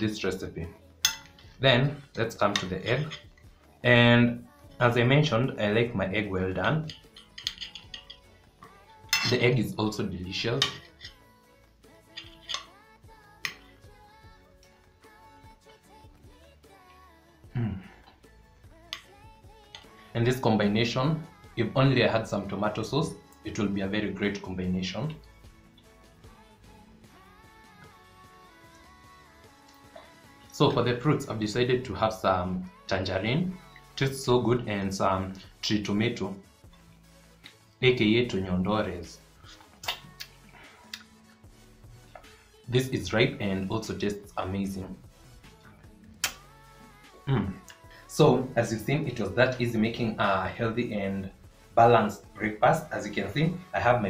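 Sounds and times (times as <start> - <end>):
quiet background music: 0.0 - 54.0
metal fork clicking on plate: 1.0 - 1.4, 6.8 - 8.3, 12.1 - 12.7.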